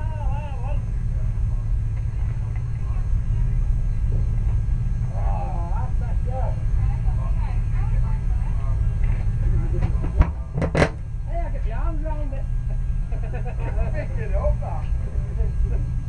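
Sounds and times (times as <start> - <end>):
people talking: 0.0 - 15.9
low rumble: 0.0 - 16.0.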